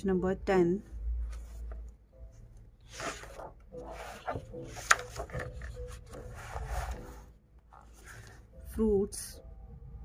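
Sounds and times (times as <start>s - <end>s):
paper pages turning and rubbing: 2.9s - 8.4s.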